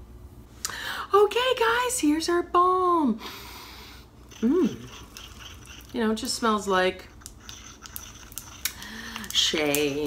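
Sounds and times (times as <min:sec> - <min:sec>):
person humming: 0:04.3 - 0:05.1.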